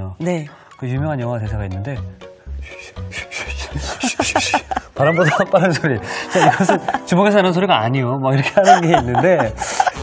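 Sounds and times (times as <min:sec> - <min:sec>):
background music with low beat: 0:00.0 - 0:10.0
man making hissing mouth sounds: 0:02.6 - 0:04.1.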